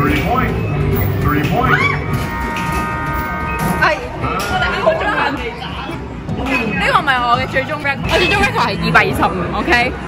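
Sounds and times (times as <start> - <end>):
arcade hubbub: 0.0 - 10.0
speech and chatter: 3.5 - 10.0.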